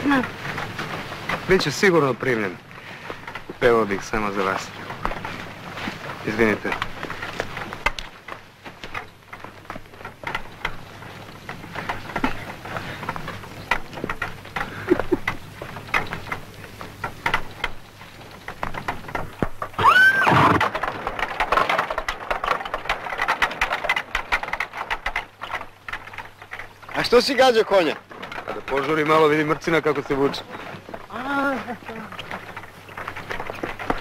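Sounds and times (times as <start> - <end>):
hooves clip-clopping: 0.0 - 34.0
knocking and rattling: 0.0 - 34.0
horse neighing: 19.8 - 20.7.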